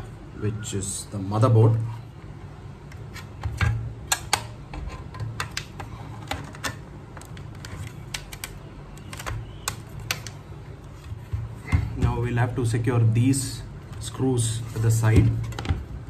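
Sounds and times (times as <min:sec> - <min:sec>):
plastic and metal clicks and knocks: 0:03.4 - 0:10.4, 0:15.1 - 0:15.9.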